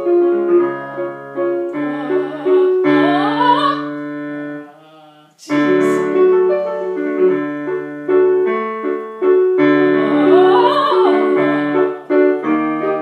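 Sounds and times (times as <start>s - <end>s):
piano chords: 0.0s - 4.8s, 5.4s - 13.0s
soprano singing with vibrato: 1.6s - 6.2s, 9.8s - 12.2s.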